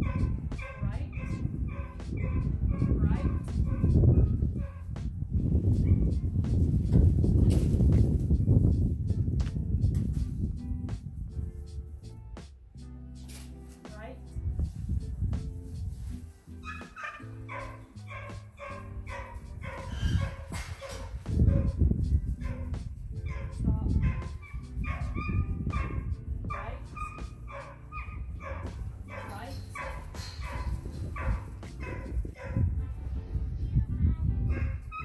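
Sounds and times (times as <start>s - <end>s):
dog barking: 0.0s - 4.8s, 16.6s - 21.8s, 22.4s - 32.7s, 34.5s - 35.0s
background music: 0.0s - 35.0s.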